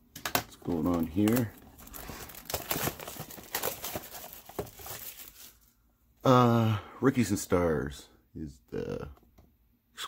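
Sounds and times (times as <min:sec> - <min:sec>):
plastic shrink wrap crinkling: 0:00.5 - 0:05.8.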